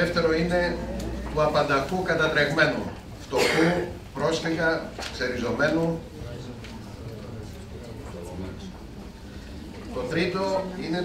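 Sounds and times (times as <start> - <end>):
man speaking: 0.0 - 6.5, 9.8 - 11.0.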